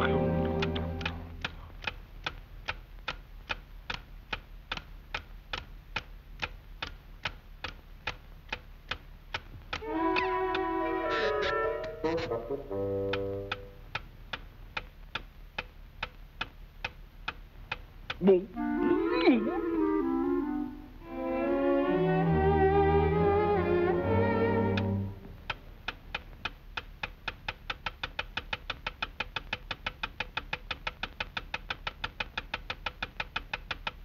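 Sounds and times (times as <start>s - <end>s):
clock-like ticking: 0.0s - 18.5s, 24.5s - 34.0s.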